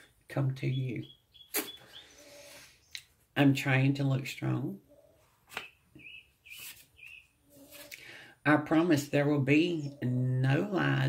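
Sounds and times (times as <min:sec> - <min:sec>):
small bird chirping: 0:00.6 - 0:03.1, 0:04.9 - 0:08.0.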